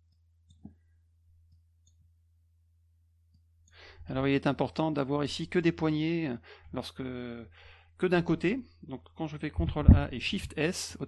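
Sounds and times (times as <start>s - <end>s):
low steady hum: 0.0s - 11.0s
person drawing a breath: 3.7s - 4.0s, 7.5s - 7.9s.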